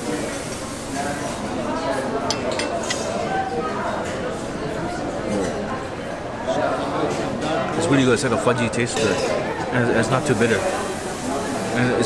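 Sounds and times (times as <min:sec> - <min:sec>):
murmur of voices: 0:00.0 - 0:12.0
cutlery clinking against china: 0:02.3 - 0:04.2, 0:08.9 - 0:09.4.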